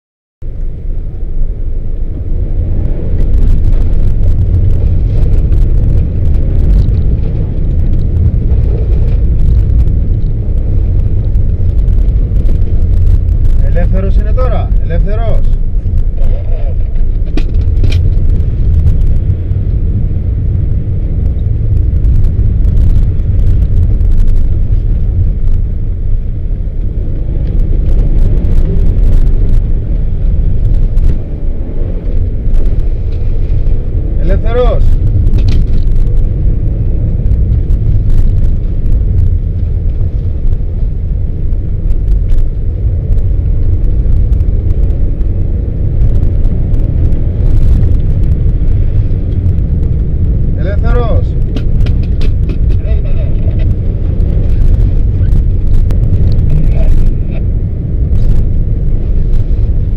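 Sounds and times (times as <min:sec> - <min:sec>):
car cabin engine and tyre rumble: 0:00.4 - 0:59.9.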